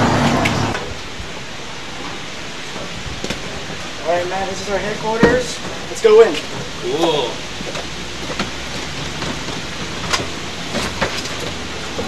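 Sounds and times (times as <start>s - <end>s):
outdoor background hiss: 0.0s - 12.0s
footsteps on deck: 4.9s - 6.8s, 7.5s - 12.0s.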